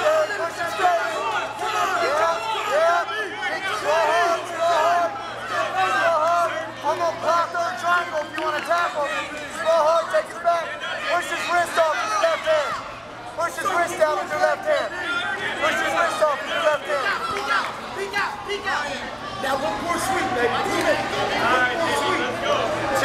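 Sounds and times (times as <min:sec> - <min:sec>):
crowd babble: 0:00.0 - 0:23.0.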